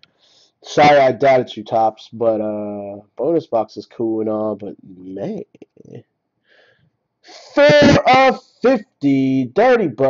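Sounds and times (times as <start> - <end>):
man reading aloud: 0.6 - 6.0, 7.3 - 10.0.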